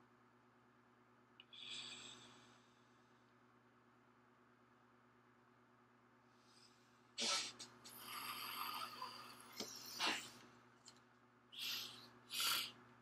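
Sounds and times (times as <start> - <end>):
hissing inhale with faint whistle: 11.6 - 12.8.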